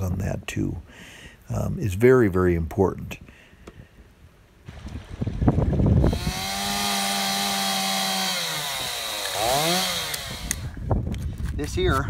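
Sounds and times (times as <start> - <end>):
chainsaw cutting wood: 5.8 - 10.8.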